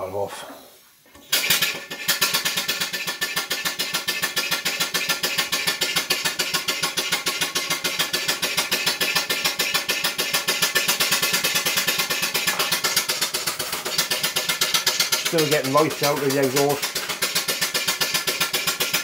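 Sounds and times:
steam engine exhaust beat: 2.0s - 19.0s.

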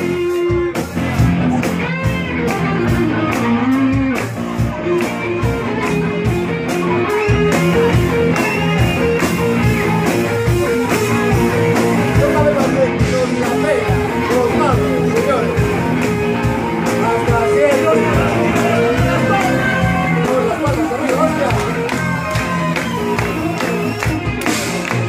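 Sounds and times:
electric guitars: 0.0s - 25.0s
steady drum beat: 0.0s - 25.0s.

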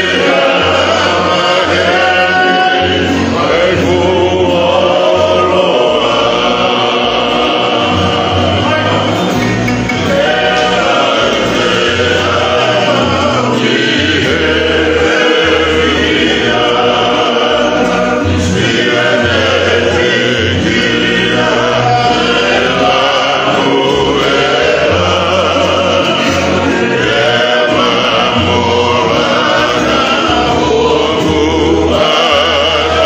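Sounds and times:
acoustic guitar: 0.0s - 33.0s
men singing in harmony: 0.0s - 33.0s.

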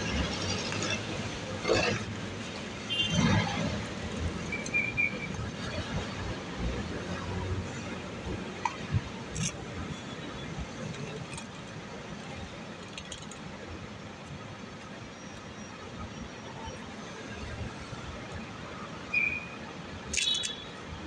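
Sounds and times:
city street traffic: 0.0s - 21.0s.

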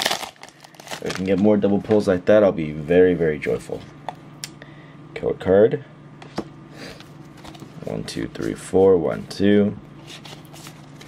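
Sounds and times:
cards rustling: 0.0s - 2.2s, 10.0s - 11.0s.

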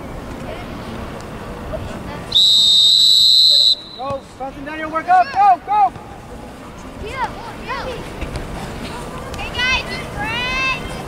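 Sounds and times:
referee whistle blast: 2.3s - 4.3s.

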